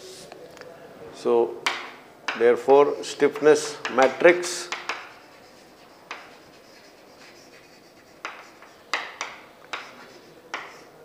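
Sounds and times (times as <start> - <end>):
chalk strokes on blackboard: 2.8 - 11.0
chalk tap on blackboard: 3.3 - 10.9.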